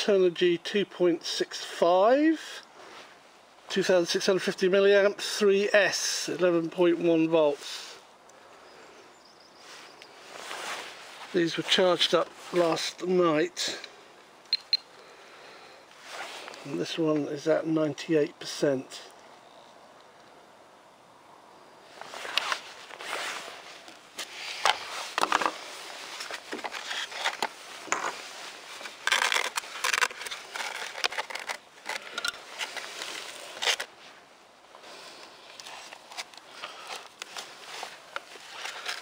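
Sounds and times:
scraping and rustling of foam: 0:09.6 - 0:13.0, 0:16.0 - 0:16.9, 0:21.9 - 0:34.3, 0:34.9 - 0:39.0.

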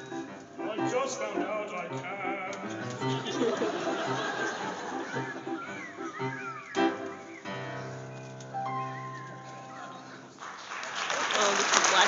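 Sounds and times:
whistled note: 0:05.1 - 0:07.7
applause: 0:10.4 - 0:12.0.

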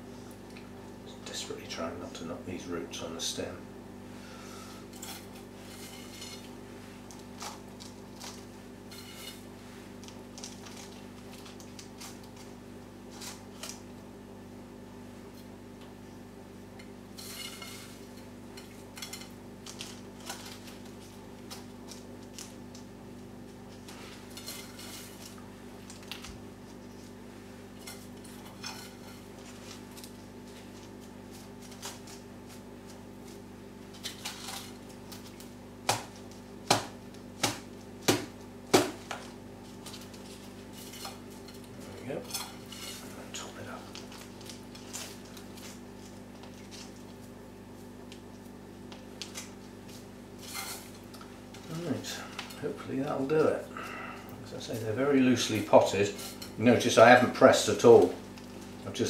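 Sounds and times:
steady low hum: 0:00.0 - 0:59.0
potting mix rustling and crunching: 0:04.0 - 0:59.0.

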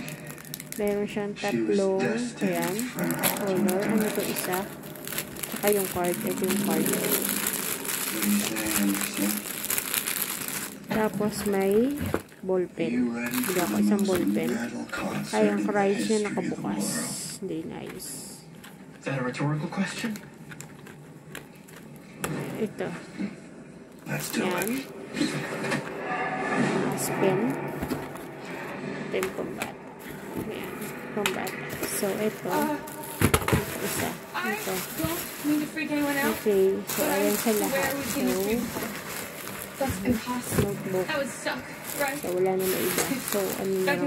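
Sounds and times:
plastic and bubble wrap crinkling: 0:00.0 - 0:01.6, 0:02.3 - 0:16.2, 0:16.8 - 0:19.0, 0:20.0 - 0:23.0, 0:23.9 - 0:26.1, 0:26.9 - 0:44.0.

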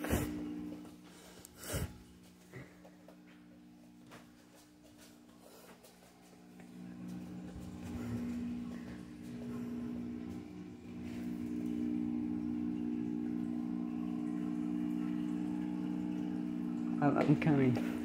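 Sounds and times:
low electrical hum: 0:00.0 - 0:18.0.

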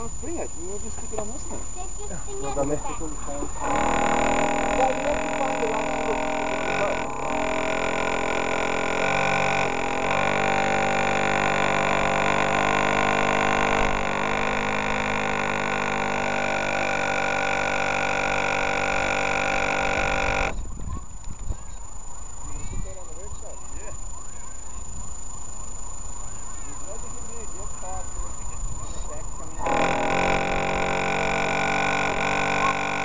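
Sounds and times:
model boat electric motor whine: 0:00.0 - 0:20.7, 0:25.1 - 0:33.0.

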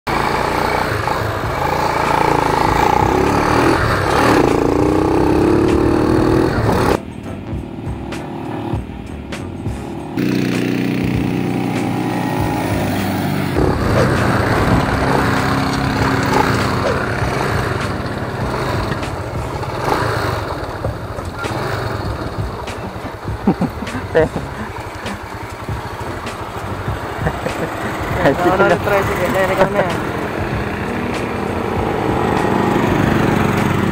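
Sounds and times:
motorcycle engine running: 0:00.1 - 0:33.9.

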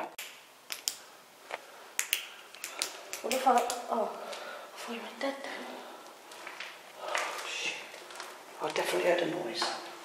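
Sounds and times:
sharp dry clicks: 0:02.0 - 0:03.8.

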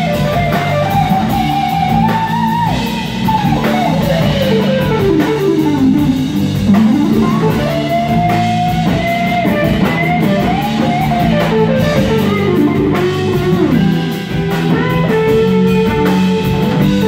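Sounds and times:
electric guitar lead: 0:00.0 - 0:17.0
jazz fusion band playing: 0:00.0 - 0:17.0.

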